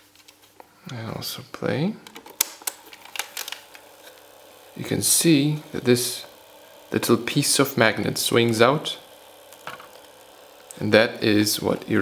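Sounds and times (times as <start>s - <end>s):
plastic mechanism rattling: 2.0s - 7.5s, 8.2s - 12.0s.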